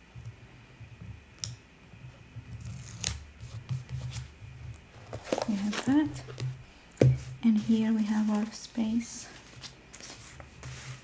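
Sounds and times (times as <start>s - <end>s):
pages turning: 4.9s - 6.6s, 9.3s - 11.0s
paper rustling: 4.9s - 8.6s, 9.2s - 11.0s
person speaking: 5.4s - 6.4s, 7.2s - 9.5s.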